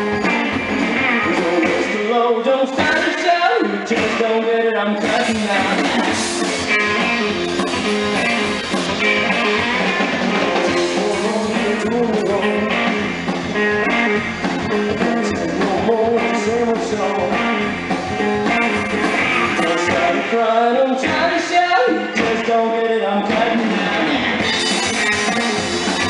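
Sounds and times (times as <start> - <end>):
rockabilly band playing: 0.0 - 26.0
man singing: 0.9 - 7.0, 9.3 - 14.0, 14.6 - 24.6.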